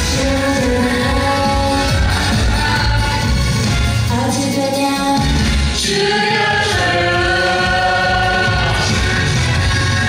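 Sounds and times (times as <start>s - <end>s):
teenagers singing into microphones: 0.0s - 3.4s, 5.7s - 10.0s
backing track: 0.0s - 10.0s.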